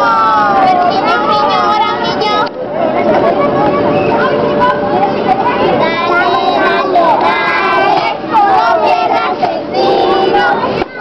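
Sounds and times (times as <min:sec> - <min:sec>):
children and women singing: 0:05.0 - 0:11.0.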